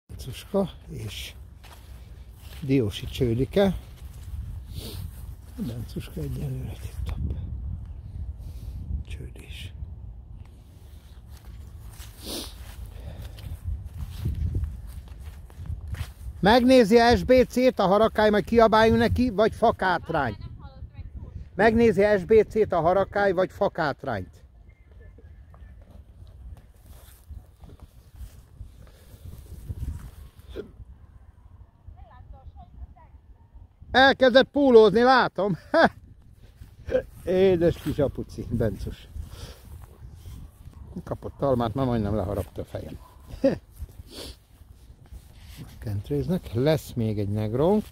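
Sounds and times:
wind rumble on microphone: 0.1s - 23.2s, 24.4s - 34.0s, 35.6s - 47.9s
footfalls on grass: 1.6s - 3.1s
breathy rustle: 10.7s - 13.7s.

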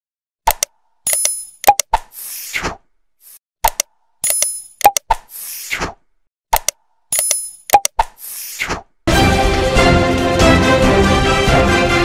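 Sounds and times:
quick clicks: 0.4s - 2.4s, 3.3s - 8.9s.

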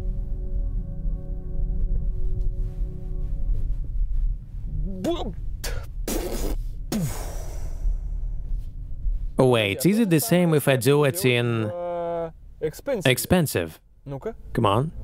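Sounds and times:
ambient electronic music: 0.0s - 10.1s
breathy exhales: 6.6s - 8.4s.

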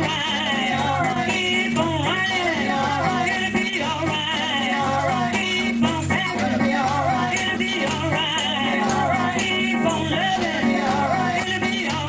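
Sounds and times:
instrumental accompaniment: 0.0s - 12.0s
praise team singing: 0.0s - 12.0s.

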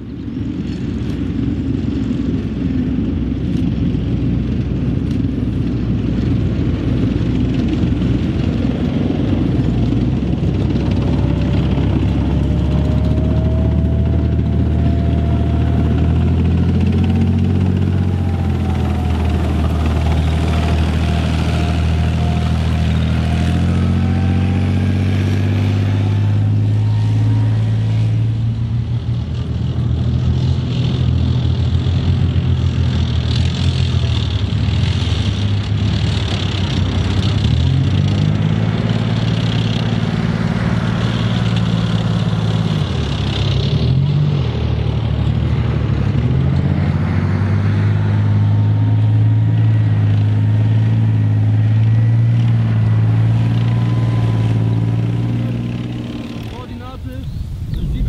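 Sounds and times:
heavy diesel engines running: 0.0s - 58.0s
tank track noise: 0.1s - 58.0s.

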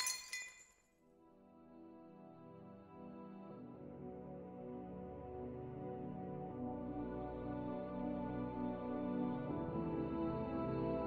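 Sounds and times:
soft ambient music: 1.2s - 11.0s.

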